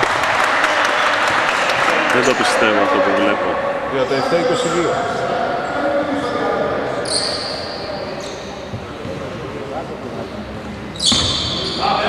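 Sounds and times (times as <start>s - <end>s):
spectators talking: 1.0s - 12.0s
shrill whistle: 11.0s - 12.0s.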